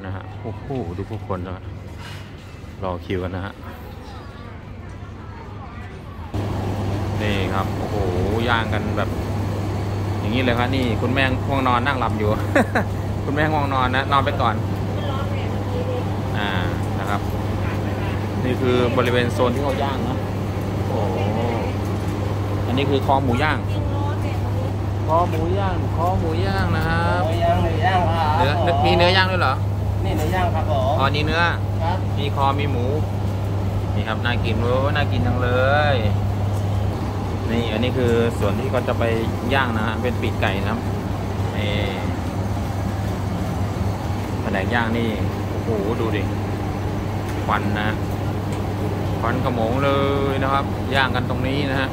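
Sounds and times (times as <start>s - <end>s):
low machine hum: 5.6s - 51.9s.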